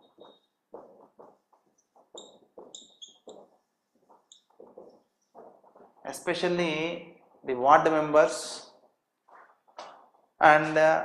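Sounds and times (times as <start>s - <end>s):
marker squeaks: 0.0s - 6.1s
marker writing on whiteboard: 0.0s - 6.4s.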